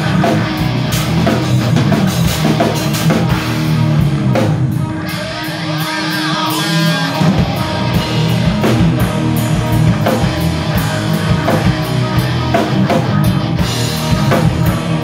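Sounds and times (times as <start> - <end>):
distorted electric guitars: 0.0 - 15.0
drum kit: 0.0 - 15.0.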